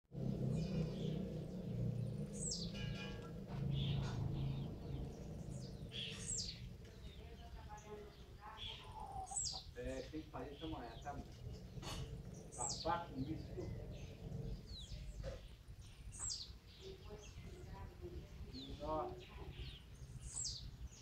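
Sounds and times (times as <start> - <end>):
bird calls: 0.2 - 21.0
bird chirps: 0.2 - 21.0.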